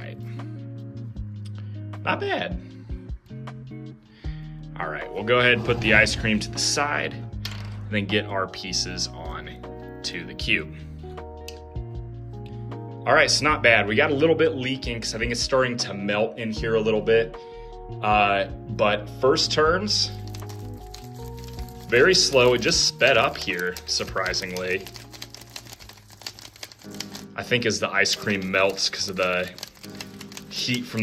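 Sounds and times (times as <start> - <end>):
background music with sustained notes: 0.0 - 31.0.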